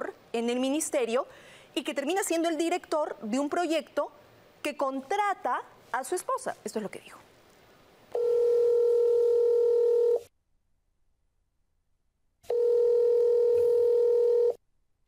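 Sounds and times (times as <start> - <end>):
telephone ringback beeps: 8.2 - 10.2, 12.5 - 14.6.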